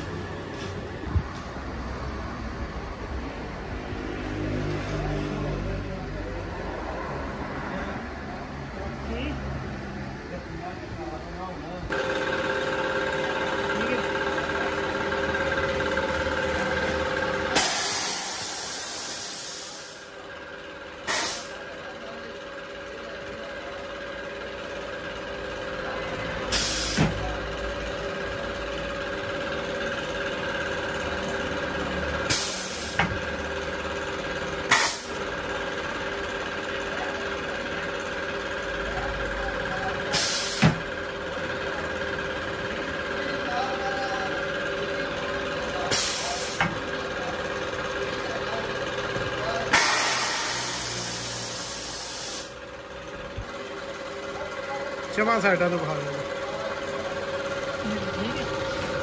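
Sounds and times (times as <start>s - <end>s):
steady machine hum: 7.0s - 59.0s
compressed air hisses: 49.8s - 52.5s.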